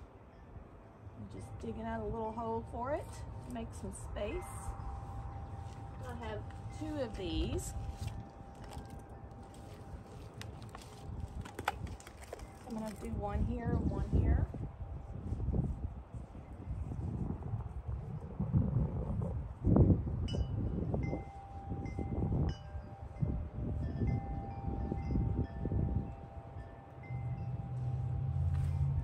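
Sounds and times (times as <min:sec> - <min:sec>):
wind rumble on microphone: 0:00.0 - 0:29.0
hands rustling plants in soil: 0:02.6 - 0:17.8, 0:27.6 - 0:29.0
wind chime ringing: 0:04.2 - 0:10.3, 0:20.3 - 0:28.5.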